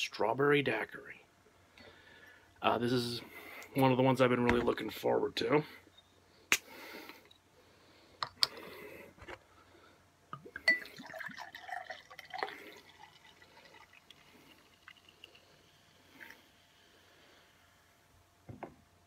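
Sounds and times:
dripping: 10.4 - 16.5
drink pouring and glugging: 10.4 - 16.7
bottle clinking against glass: 10.6 - 11.0.

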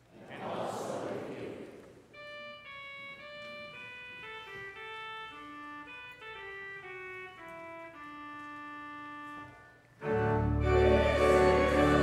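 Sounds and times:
church organ note: 2.1 - 12.0.

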